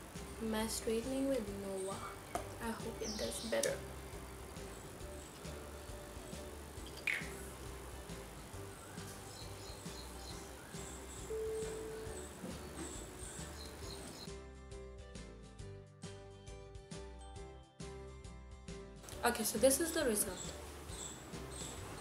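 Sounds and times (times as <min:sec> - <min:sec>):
quiet background music: 0:00.0 - 0:22.0
music with steady beat: 0:01.1 - 0:22.0.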